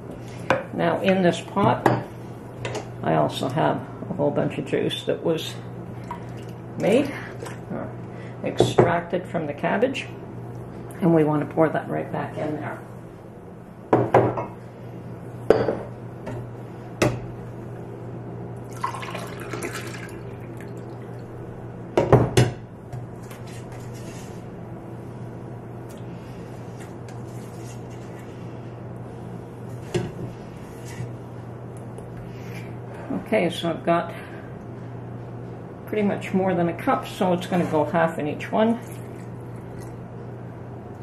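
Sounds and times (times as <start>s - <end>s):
liquid sounds: 18.6s - 21.4s, 38.7s - 40.0s.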